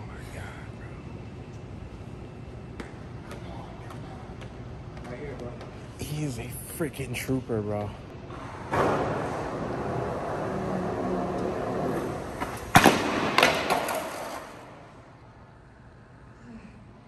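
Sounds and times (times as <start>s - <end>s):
skateboard wheels rolling: 8.3s - 15.0s
skateboard slamming down: 8.7s - 9.6s, 12.4s - 14.6s.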